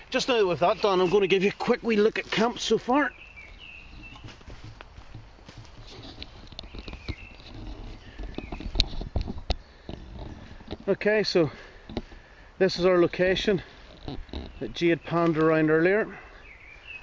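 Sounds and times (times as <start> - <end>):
rustling undergrowth: 0.0 - 17.0
footsteps: 0.2 - 15.7
faint high chirping calls: 2.6 - 4.6, 14.3 - 17.0.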